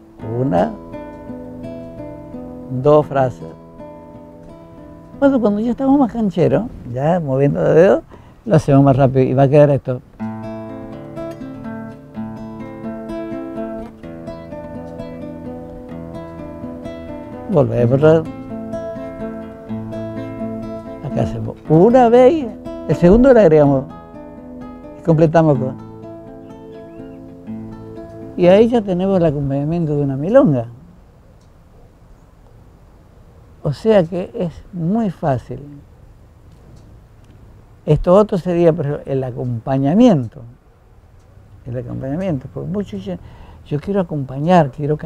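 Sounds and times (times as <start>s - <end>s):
classical guitar plucking: 0.0s - 6.1s, 10.0s - 30.6s
faint low background rumble: 0.0s - 45.0s.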